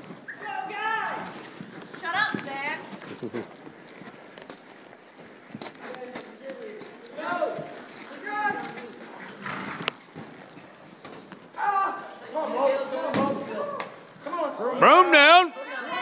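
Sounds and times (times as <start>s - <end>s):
people shouting: 0.3s - 1.4s, 11.5s - 14.0s, 14.7s - 16.0s.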